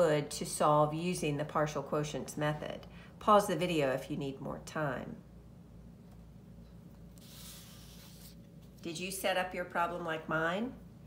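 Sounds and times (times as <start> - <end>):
rubbing against paper: 7.2 - 8.5.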